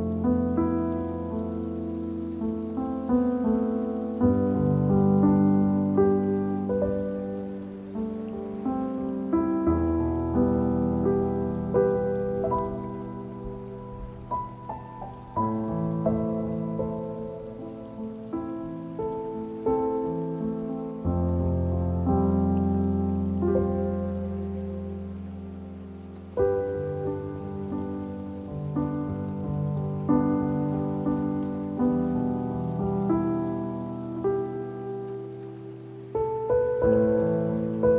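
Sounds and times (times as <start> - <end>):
slow solo piano: 0.0 - 37.9
steady rain: 0.0 - 37.9.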